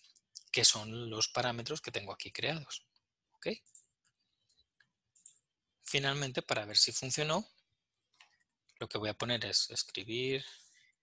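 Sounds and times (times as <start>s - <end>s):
man talking: 0.4s - 3.6s, 5.8s - 7.5s, 8.8s - 10.6s.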